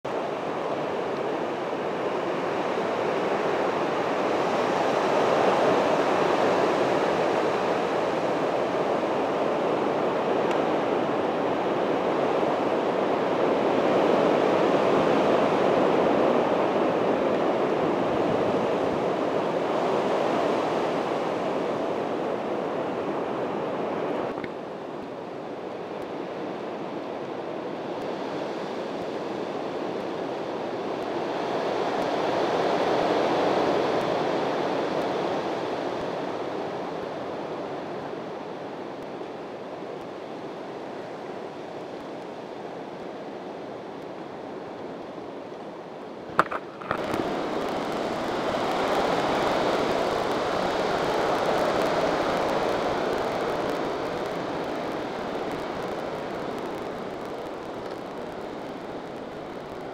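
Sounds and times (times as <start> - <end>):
steady rushing noise: 45.2 - 59.9.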